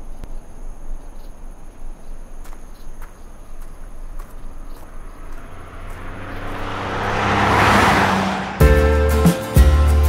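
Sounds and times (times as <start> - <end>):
faint ticks: 0.0 - 4.9
high insect drone: 0.0 - 6.8
low wind rumble: 3.8 - 9.1.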